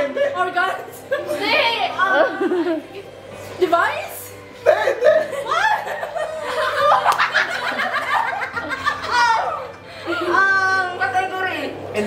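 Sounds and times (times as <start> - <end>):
people laughing: 0.0 - 3.1, 4.6 - 10.5.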